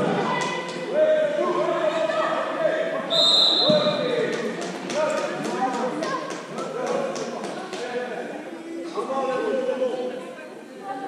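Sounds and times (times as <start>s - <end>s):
referee's whistle blast: 3.1s - 4.0s.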